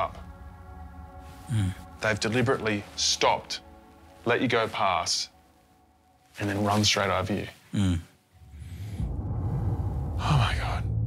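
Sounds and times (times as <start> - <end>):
low rumble: 8.4 - 11.0.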